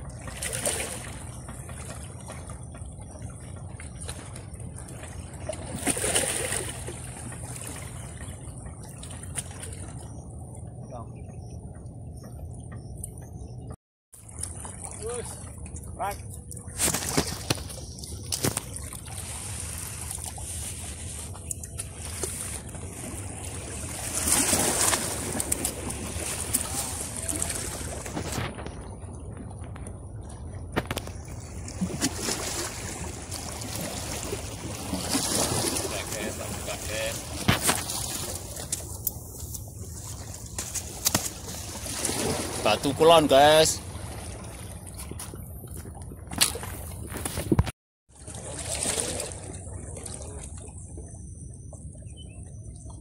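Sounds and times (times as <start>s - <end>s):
waves sloshing against rocks: 0.0s - 12.1s, 14.2s - 51.2s.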